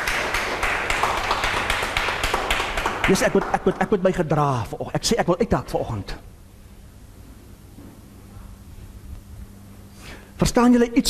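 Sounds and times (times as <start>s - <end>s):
audience applauding: 0.0s - 4.2s.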